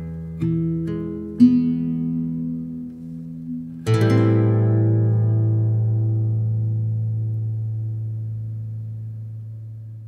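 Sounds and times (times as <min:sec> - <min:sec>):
classical guitar chord ringing: 0:00.0 - 0:10.0.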